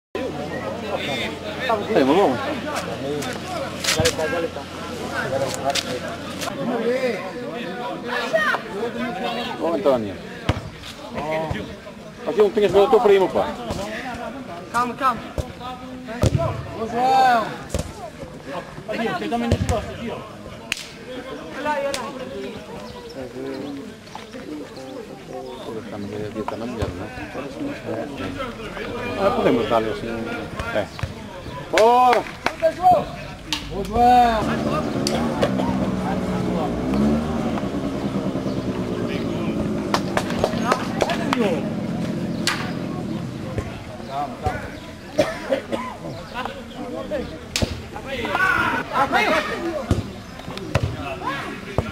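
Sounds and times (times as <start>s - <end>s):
people shouting and calling: 6.1s - 10.5s, 27.0s - 37.7s, 38.8s - 51.9s.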